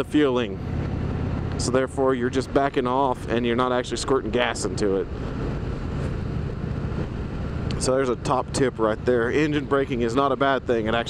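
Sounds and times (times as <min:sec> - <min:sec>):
motorcycle engine rumbling: 0:00.0 - 0:11.0
road and wind noise: 0:00.0 - 0:11.0.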